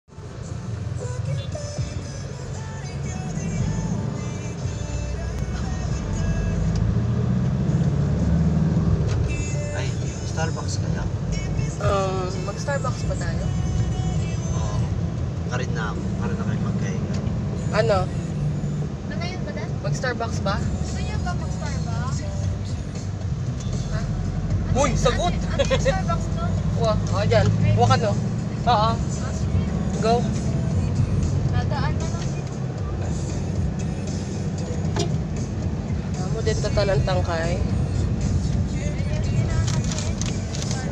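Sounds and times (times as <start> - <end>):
background music: 0.1 - 40.9
car driving rumble from inside: 0.1 - 40.9.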